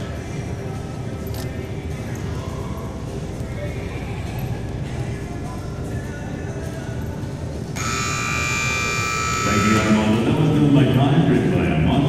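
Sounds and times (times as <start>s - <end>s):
country music: 0.0s - 12.0s
harsh buzzer blare: 7.8s - 10.4s.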